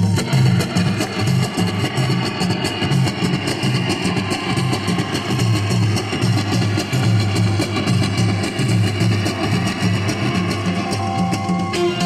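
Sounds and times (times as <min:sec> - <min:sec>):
congas and frame drums: 0:00.0 - 0:12.0
plucked string instrument: 0:10.5 - 0:12.0.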